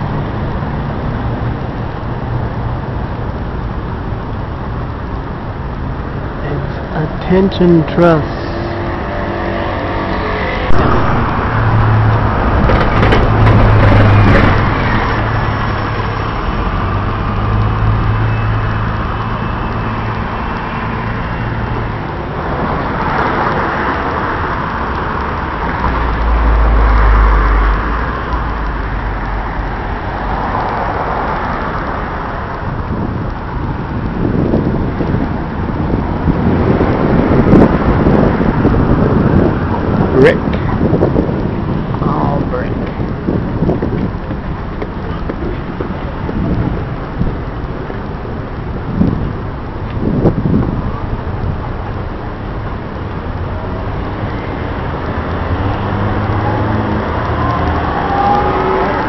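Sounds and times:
deep heavy rumble: 0:00.0 - 0:59.0
low engine hum: 0:00.0 - 0:59.0
passing cars: 0:00.0 - 0:59.0.

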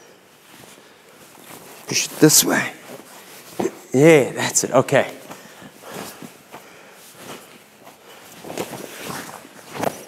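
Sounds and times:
rustling of cotton uniforms: 0:00.0 - 0:10.0
bare feet shuffling on mat: 0:00.3 - 0:10.0.

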